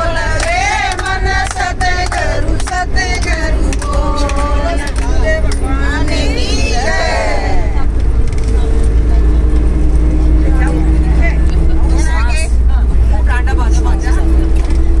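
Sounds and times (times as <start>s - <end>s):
people speaking: 0.0s - 15.0s
vehicle engine rumble: 0.0s - 15.0s.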